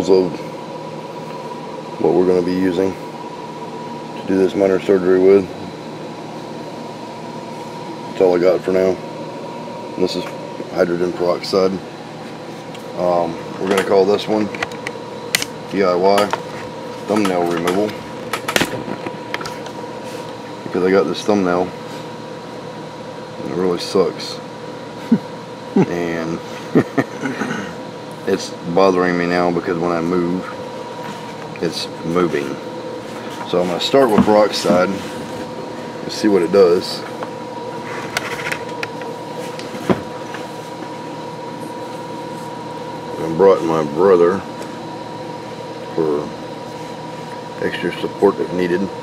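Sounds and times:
steady hum: 0.0s - 49.0s.

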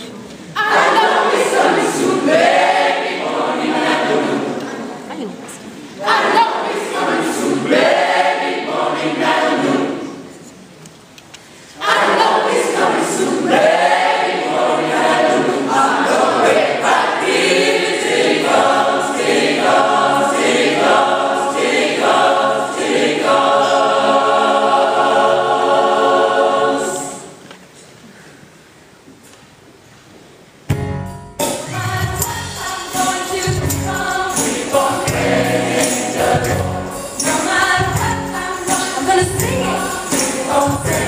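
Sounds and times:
gospel choir singing: 0.5s - 5.1s, 5.7s - 10.5s, 11.8s - 27.5s, 31.5s - 41.0s.

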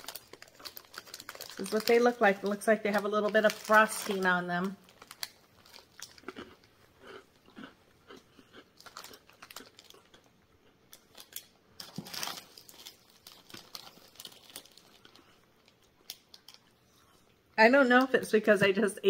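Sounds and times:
person chewing biscuit: 0.0s - 1.6s, 4.9s - 17.5s.

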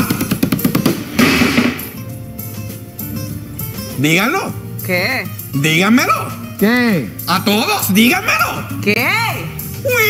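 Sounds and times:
snare drum roll: 0.0s - 2.0s
cymbal crash: 0.9s - 2.1s.

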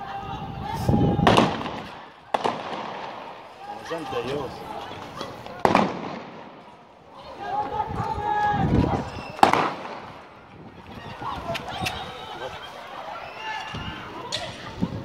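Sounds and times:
people shouting: 0.0s - 15.0s
shotgun blasts with echo: 1.2s - 3.8s, 5.6s - 6.8s, 9.4s - 10.3s.

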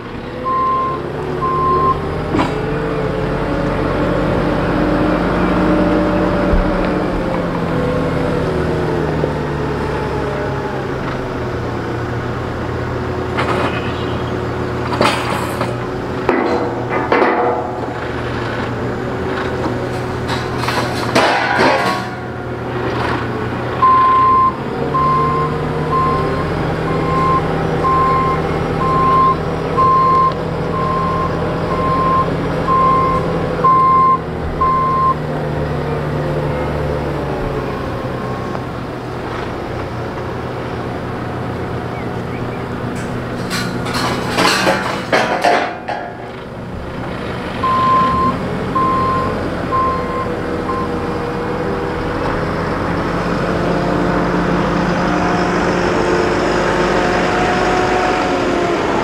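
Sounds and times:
diesel engine running: 0.0s - 59.0s
reversing alarm beeps: 0.4s - 2.0s, 23.8s - 35.2s, 47.6s - 50.9s
clanks and knocks: 14.8s - 23.3s, 42.9s - 46.5s.

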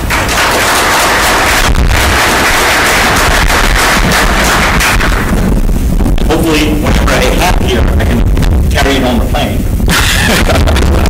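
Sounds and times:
audience applauding: 0.1s - 5.3s.

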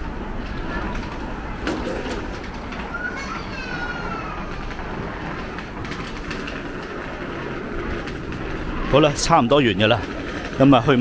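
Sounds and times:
train passing: 0.0s - 11.0s.

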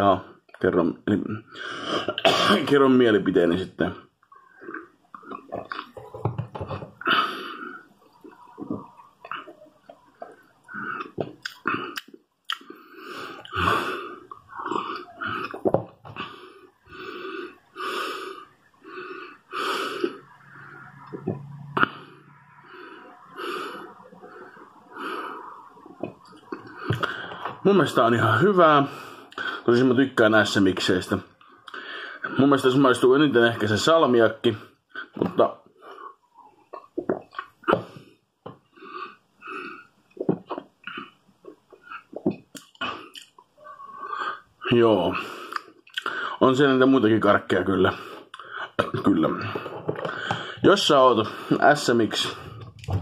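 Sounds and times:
man burping: 1.2s - 2.8s, 4.6s - 7.4s, 10.7s - 12.7s, 13.4s - 16.4s
person breathing: 1.5s - 2.1s, 7.0s - 8.0s, 12.6s - 20.8s, 21.8s - 25.7s, 26.6s - 27.6s, 31.7s - 32.4s, 42.8s - 46.4s, 47.9s - 48.8s, 49.4s - 50.6s, 52.2s - 53.0s
lip-smacking clicks: 11.0s - 12.7s, 42.1s - 43.5s.

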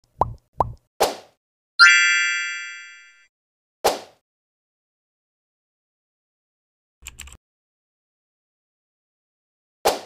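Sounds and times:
bright bell-like chime: 1.8s - 3.2s.

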